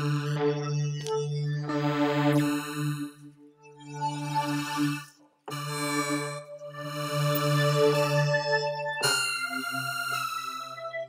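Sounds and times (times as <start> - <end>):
synthesizer sustained chord: 0.0 - 11.0.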